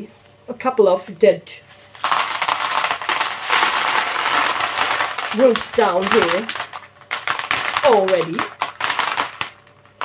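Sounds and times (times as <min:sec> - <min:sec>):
clay pebbles rattling: 0:01.8 - 0:10.0
pebbles spilling into plastic tub: 0:01.9 - 0:10.0.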